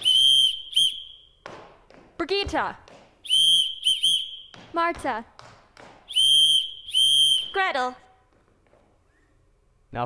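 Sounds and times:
high whistle blowing: 0:00.0 - 0:01.4, 0:03.2 - 0:04.6, 0:06.1 - 0:07.9.

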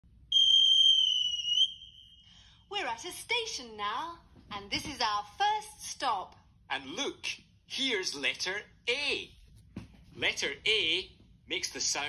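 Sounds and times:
high-pitched whistle blast: 0:00.3 - 0:02.6.

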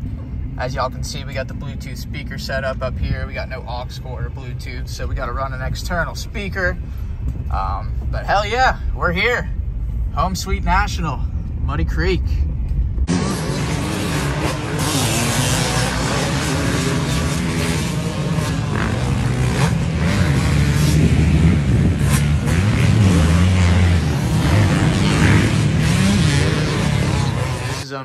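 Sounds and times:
motocross engine revving: 0:13.0 - 0:28.0.

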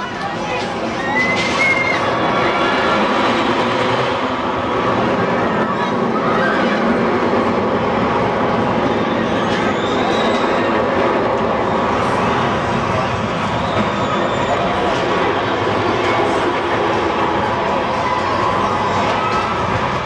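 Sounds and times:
roller coaster train rumbling: 0:00.0 - 0:20.0.

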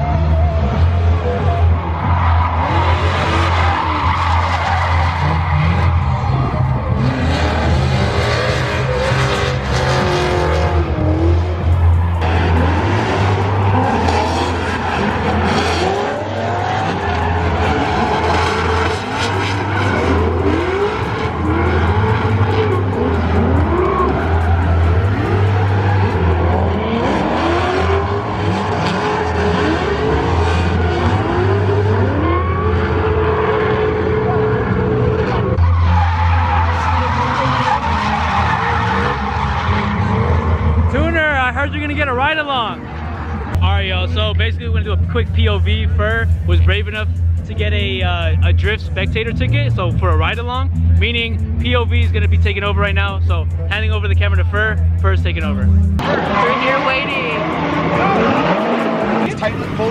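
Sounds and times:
tyres screeching: 0:00.0 - 0:34.2, 0:35.2 - 0:44.2, 0:55.4 - 0:59.9
car engines revving: 0:00.0 - 0:59.9.

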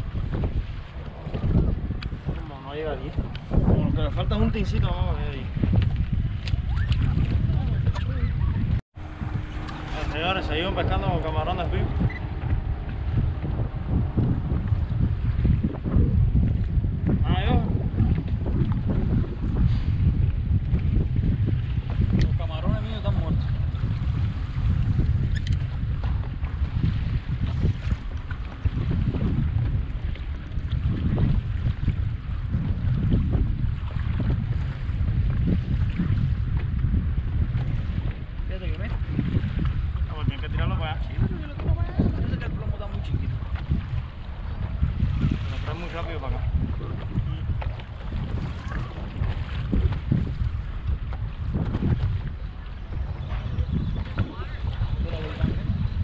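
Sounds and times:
water slapping against hull: 0:00.0 - 0:56.0
wind buffeting microphone: 0:00.0 - 0:56.0.

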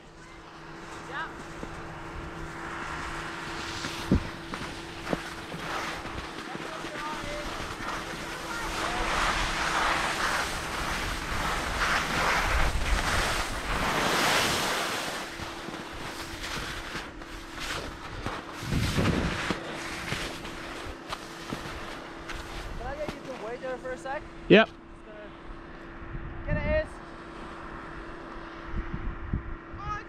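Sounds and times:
snow scraping under ski edges: 0:00.6 - 0:24.0
wind rushing over microphone: 0:01.5 - 0:06.5, 0:07.1 - 0:16.9, 0:17.8 - 0:21.0, 0:27.6 - 0:30.0.

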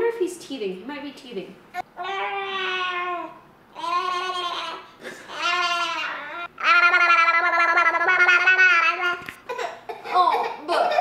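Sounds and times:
infant crying: 0:01.8 - 0:10.6.

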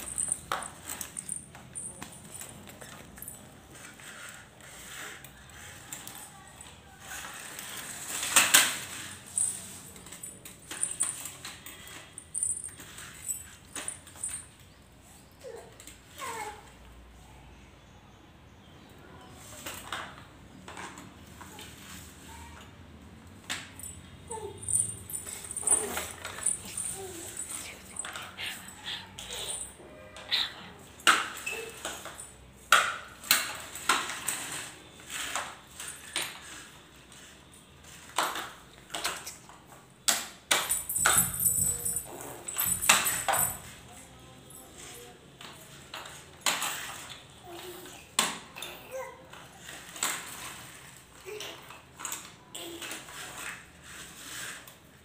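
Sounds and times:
plastic baby walker rattling: 0:00.0 - 0:14.6, 0:23.4 - 0:29.7
light high-pitched jingles: 0:23.5 - 0:32.5, 0:40.5 - 0:47.7.

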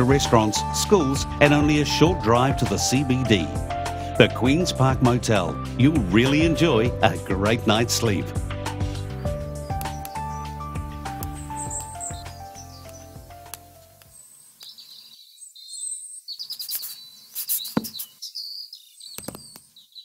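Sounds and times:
piano background music: 0:00.0 - 0:14.0
bird chirps and twitters: 0:09.0 - 0:10.6, 0:11.2 - 0:13.4, 0:14.1 - 0:20.0.

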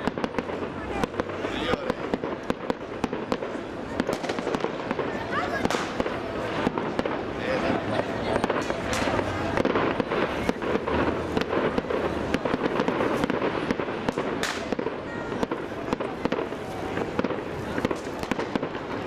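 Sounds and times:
dynamite blasts: 0:00.0 - 0:19.0
fireworks explosions: 0:00.0 - 0:19.0.

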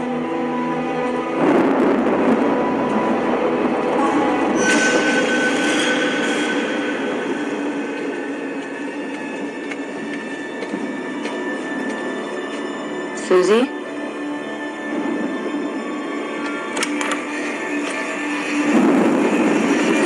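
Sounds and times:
eerie screeching drone: 0:00.0 - 0:20.0.

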